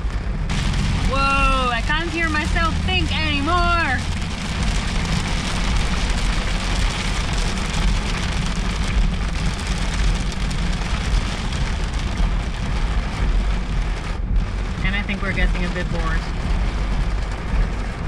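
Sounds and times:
heavy rain on vehicle roof: 0.0s - 18.0s
moving vehicle rumble: 0.0s - 18.0s.

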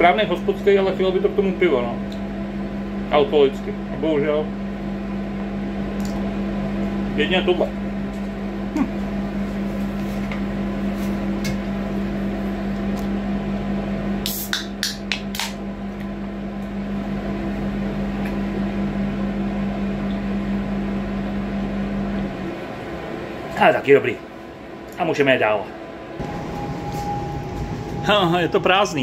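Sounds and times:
bus engine humming: 25.7s - 29.0s.

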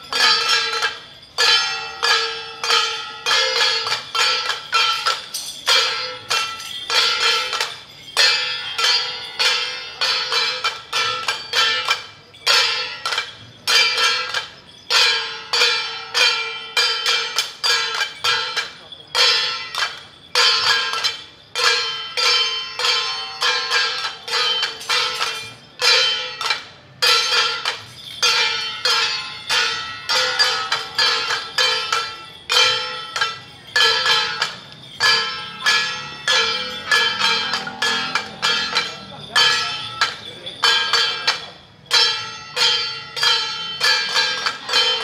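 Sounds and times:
metal percussion struck in a beat: 0.0s - 45.0s.

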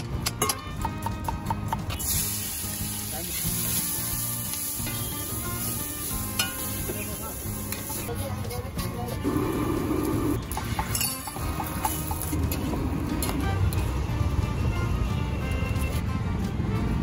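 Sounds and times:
food sizzling on hot griddle: 1.9s - 8.2s.

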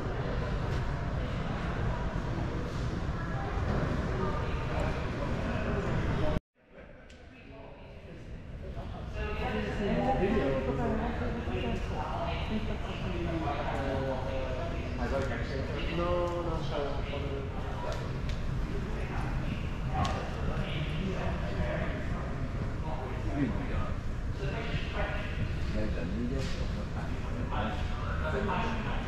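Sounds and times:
chatter of visitors: 0.0s - 29.0s.

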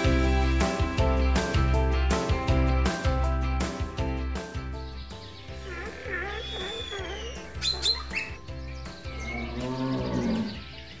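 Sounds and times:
background music: 0.0s - 11.0s
warbling animal calls: 5.5s - 10.7s
low moo-like call: 9.1s - 10.6s.

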